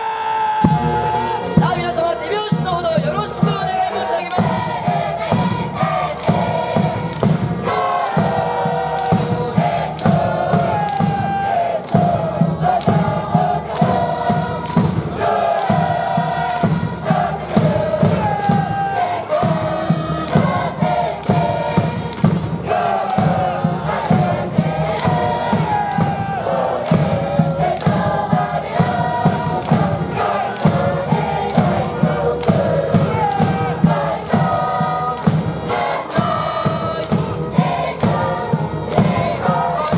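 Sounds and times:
massed voices singing: 0.0 - 39.9
band playing melody: 0.6 - 7.7
bass drum beat: 0.6 - 39.9.

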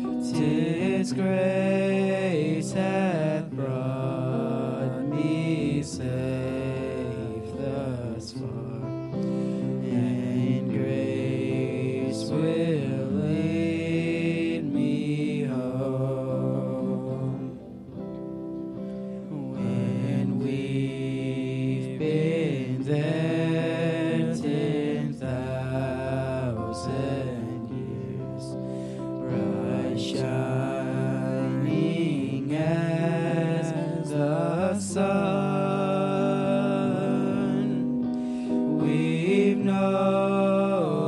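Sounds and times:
men singing held notes: 0.0 - 18.1, 19.1 - 41.0
electric guitar: 0.0 - 41.0
keyboard: 0.0 - 41.0.

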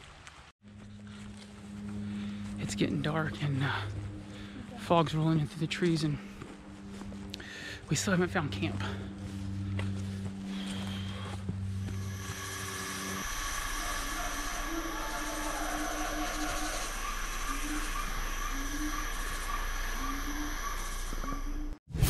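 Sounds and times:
low hum: 0.3 - 22.0
hissing rushing drone: 10.4 - 21.8
faint wavering notes: 13.1 - 21.8.

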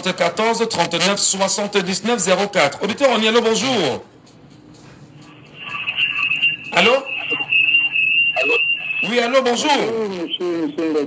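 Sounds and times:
person speaking on phone: 5.3 - 7.6, 8.4 - 11.0
high-pitched telephone line tone: 5.3 - 11.0.

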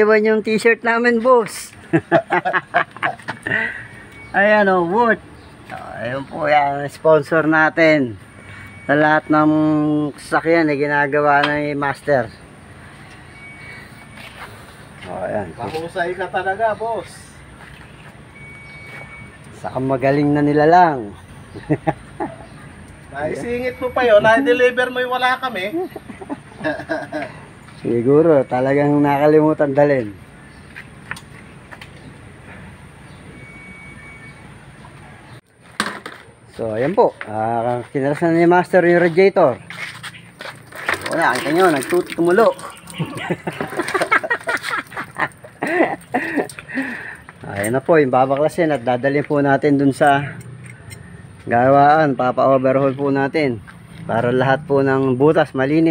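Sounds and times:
indistinct voices talking: 0.0 - 31.6
vehicle rumble: 0.0 - 55.9
high beep-like tone: 8.3 - 9.8, 13.3 - 14.4, 18.4 - 19.4, 33.3 - 34.6.

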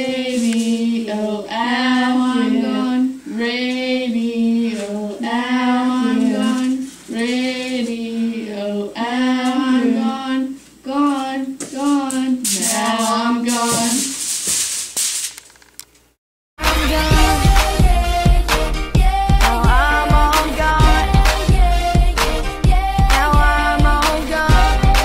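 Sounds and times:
woman singing held notes: 0.0 - 14.1.

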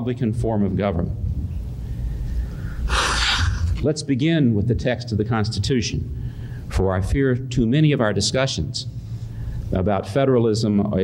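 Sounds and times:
low steady hum: 0.0 - 11.0
man breathing into microphone: 1.8 - 3.8, 6.2 - 6.7, 8.9 - 9.7.

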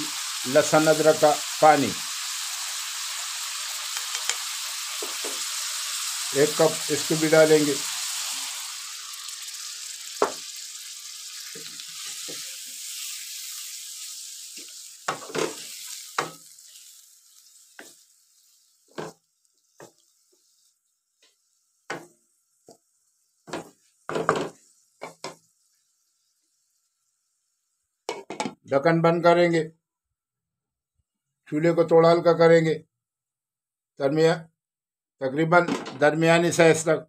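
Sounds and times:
meat sizzling in a wok: 0.0 - 28.5
wooden spatula scraping a pan: 17.7 - 26.4.

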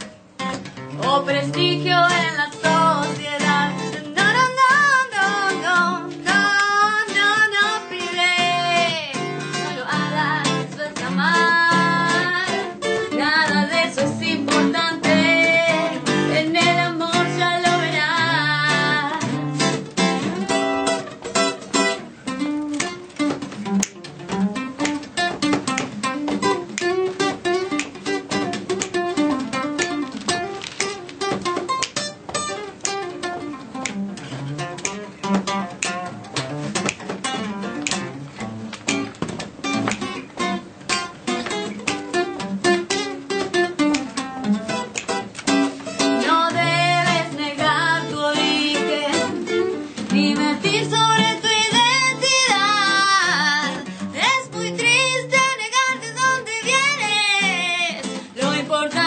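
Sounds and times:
acoustic guitar blues chords: 0.0 - 59.0
woman singing: 1.0 - 19.6, 46.0 - 59.0.

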